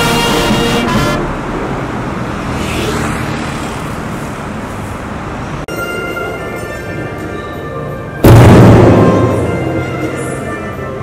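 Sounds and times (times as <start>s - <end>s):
steady traffic noise: 0.0s - 11.0s
car passing: 0.6s - 5.7s
motorcycle passing: 1.2s - 5.2s.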